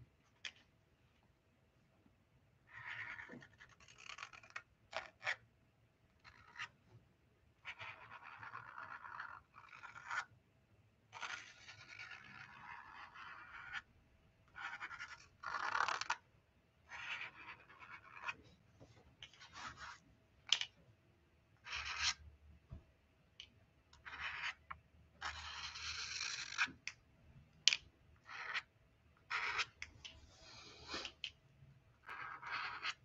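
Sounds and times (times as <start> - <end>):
marker scratching on paper: 2.7 - 5.4, 7.6 - 10.3, 11.2 - 13.8, 16.9 - 18.4, 19.4 - 20.0, 21.6 - 22.2, 25.2 - 26.7, 29.3 - 31.2, 32.0 - 33.0.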